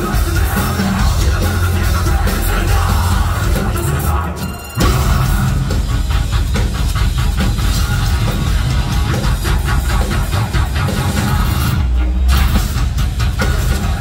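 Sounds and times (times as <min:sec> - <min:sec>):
heavy metal band playing live: 0:00.0 - 0:14.0.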